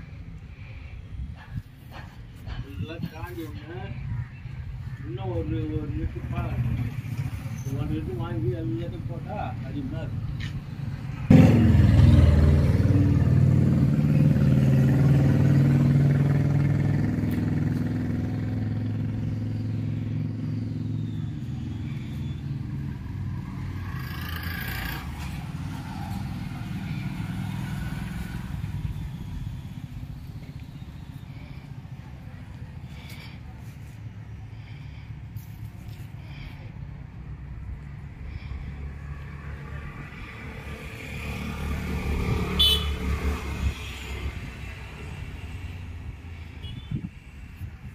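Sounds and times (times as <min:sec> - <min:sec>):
traffic noise: 0:00.0 - 0:47.9.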